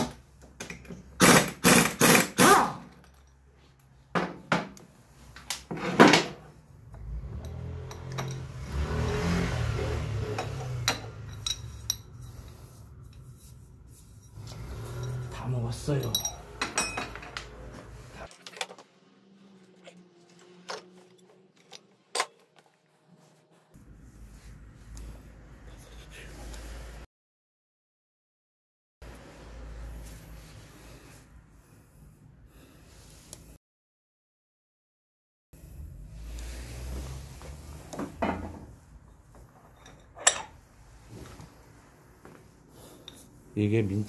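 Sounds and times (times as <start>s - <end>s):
metal tools clinking: 7.2s - 9.3s, 10.3s - 13.3s, 14.1s - 17.6s, 39.4s - 40.6s
metal clank with ring: 16.0s - 17.2s.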